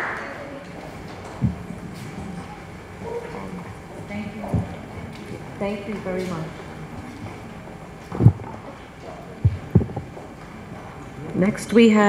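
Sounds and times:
room hum: 0.0s - 12.0s
dull low thumps: 1.4s - 1.7s, 8.1s - 8.6s, 9.4s - 10.3s.

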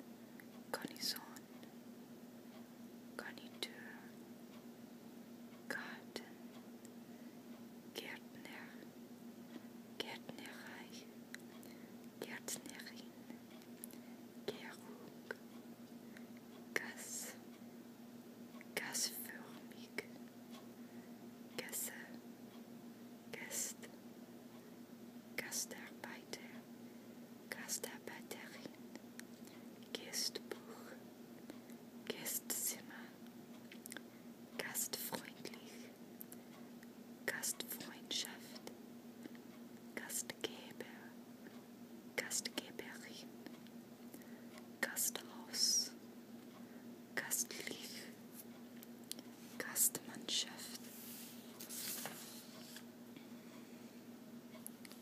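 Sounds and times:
faint low hum: 0.0s - 55.0s
person whispering: 0.8s - 1.4s, 3.2s - 4.1s, 5.7s - 6.4s, 8.0s - 8.8s, 10.0s - 11.1s, 12.2s - 13.2s, 14.5s - 15.4s, 16.8s - 17.4s, 18.8s - 20.2s, 21.6s - 22.2s, 23.4s - 23.9s, 25.4s - 26.6s, 27.5s - 28.8s, 29.9s - 31.0s, 32.1s - 33.2s, 34.6s - 35.9s, 37.3s - 38.7s, 40.0s - 41.2s, 42.2s - 43.3s, 44.8s - 46.0s, 47.2s - 48.2s, 49.4s - 52.8s.

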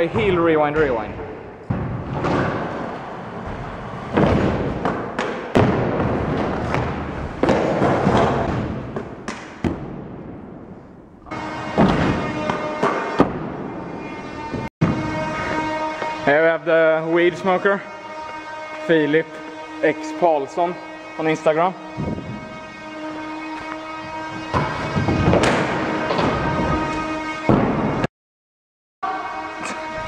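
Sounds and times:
scooter landing thuds: 3.4s - 10.2s.

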